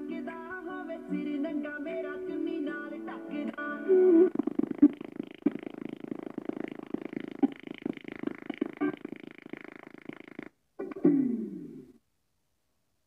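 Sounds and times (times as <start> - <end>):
speaker stuttering chopped buzz: 3.5 - 11.9.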